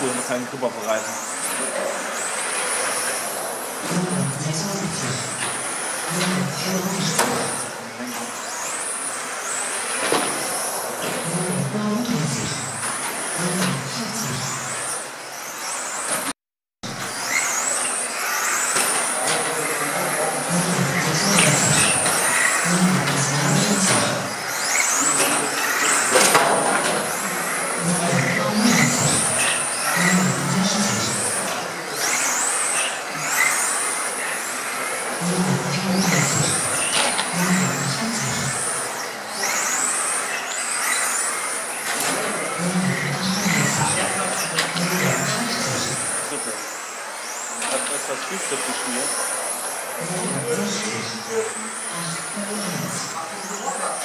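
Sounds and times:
electric motor whine: 16.9 - 54.0.

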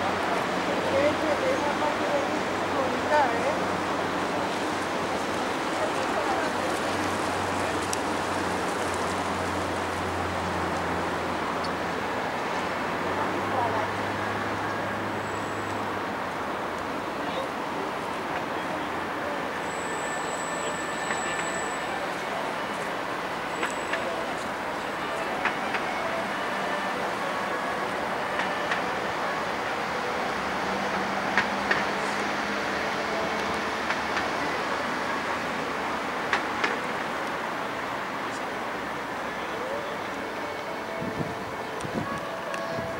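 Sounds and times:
distant city traffic: 0.0 - 42.9.

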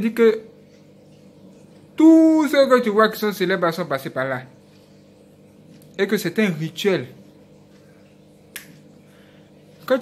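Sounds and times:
faint room hum: 0.0 - 10.0
man talking: 6.0 - 7.2.

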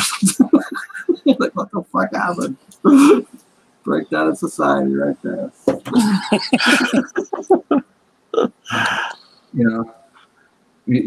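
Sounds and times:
man chuckling: 0.0 - 3.4, 5.2 - 7.8, 8.7 - 9.8
breathy sigh: 2.9 - 3.3, 8.7 - 9.2.

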